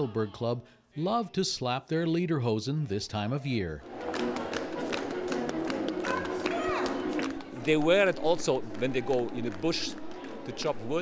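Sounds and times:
folk dance music: 0:03.8 - 0:11.0.

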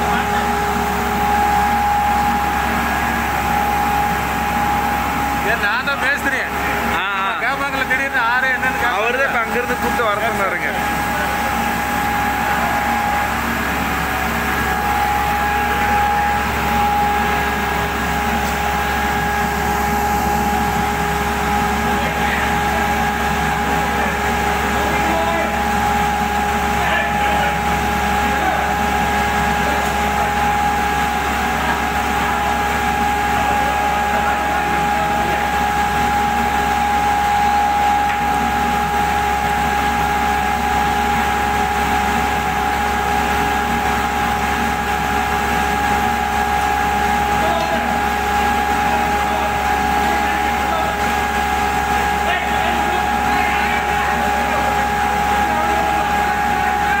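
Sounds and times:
furnace blower drone with whine: 0:00.0 - 0:57.0.

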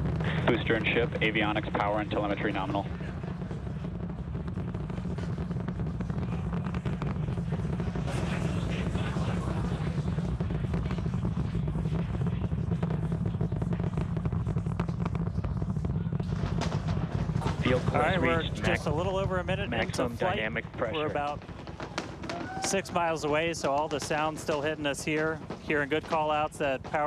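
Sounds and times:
distant rocket engine rumble: 0:00.0 - 0:27.0.

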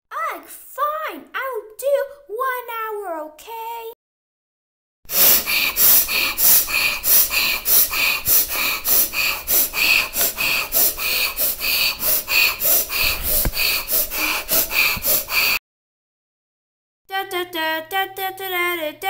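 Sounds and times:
person breathing hard and fast: 0:05.1 - 0:15.6.

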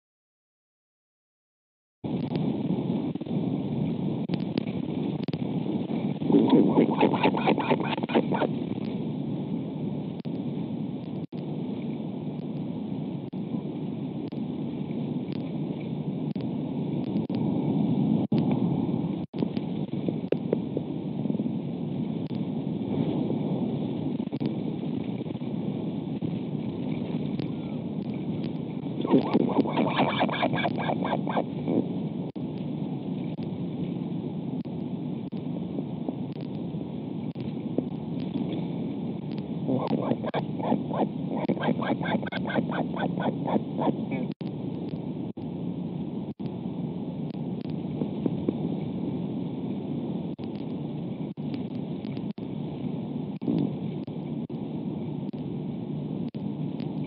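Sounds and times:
wind rushing over microphone: 0:02.0 - 0:57.0.

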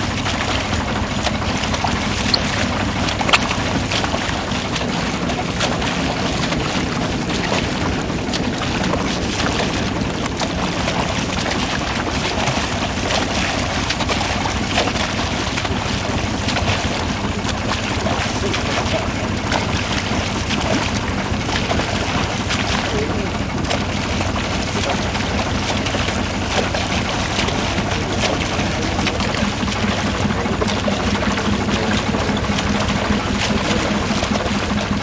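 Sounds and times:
boat engine rumbling: 0:00.0 - 0:35.0
water splashing and rushing: 0:00.0 - 0:35.0.

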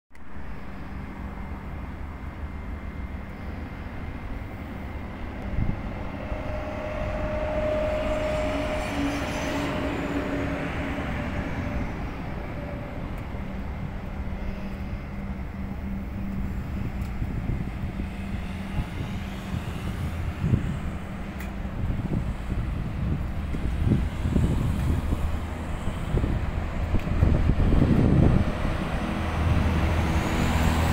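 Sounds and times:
vehicle engine rumble: 0:00.1 - 0:30.9
wind buffeting microphone: 0:05.1 - 0:30.9.

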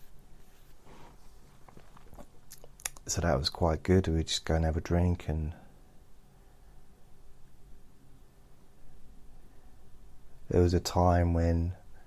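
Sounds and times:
soft breath: 0:00.5 - 0:01.5
mouth clicks and lip smacks: 0:01.7 - 0:03.1.

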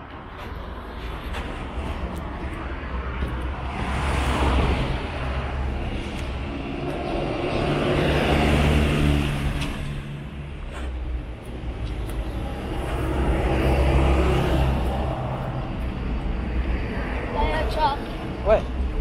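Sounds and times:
bus driving past: 0:00.0 - 0:19.0
road traffic passing: 0:00.0 - 0:19.0.

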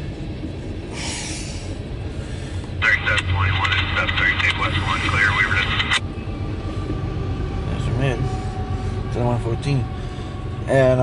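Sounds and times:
freight train rumbling on rails: 0:00.0 - 0:11.0.

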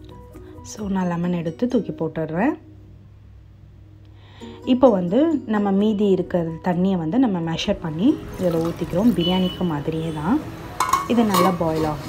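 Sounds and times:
woman speaking: 0:00.7 - 0:02.6, 0:04.7 - 0:10.4, 0:11.1 - 0:12.0
water poured into a pot: 0:08.2 - 0:09.5.

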